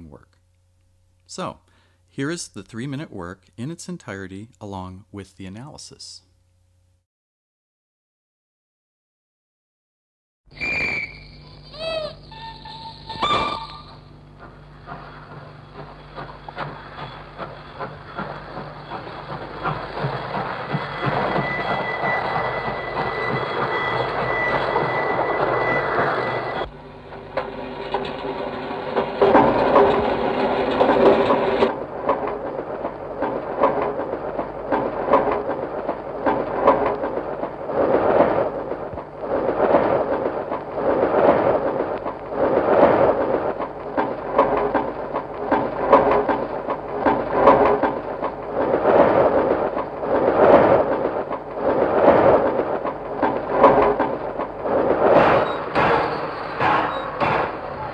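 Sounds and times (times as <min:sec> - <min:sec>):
train whistle tone: 0:10.5 - 0:14.1
looped clattering train sounds: 0:10.8 - 0:57.9.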